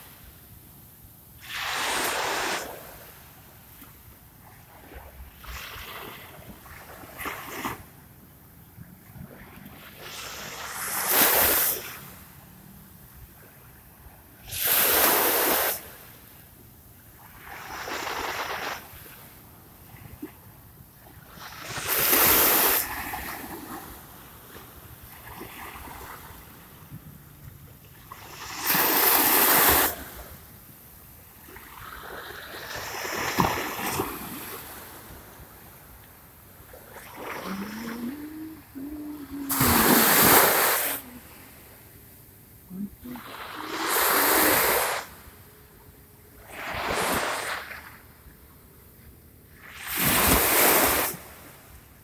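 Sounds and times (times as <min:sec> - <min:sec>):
small waves washing onto sand: 0:01.3 - 0:08.1, 0:08.8 - 0:48.6, 0:49.5 - 0:52.0
faint low humming tone: 0:37.4 - 0:40.0.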